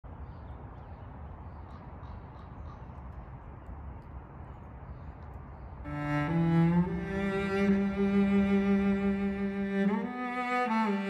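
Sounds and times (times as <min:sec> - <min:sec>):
low rumble and hiss: 0:00.1 - 0:11.0
bowed cello note: 0:05.9 - 0:11.0.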